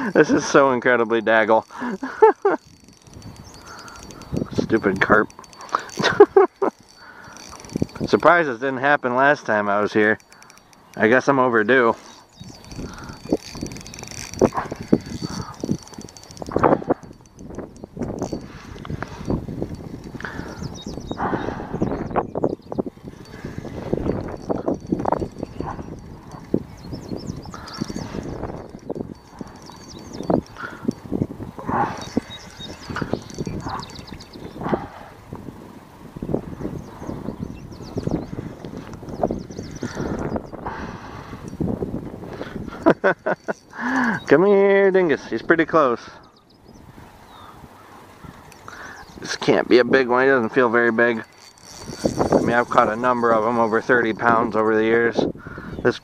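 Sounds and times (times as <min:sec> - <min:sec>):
fishing reel clicks and knocks: 0:00.0 - 0:21.2, 0:22.4 - 0:34.8, 0:37.8 - 0:40.4, 0:41.2 - 0:45.1, 0:47.7 - 0:55.1.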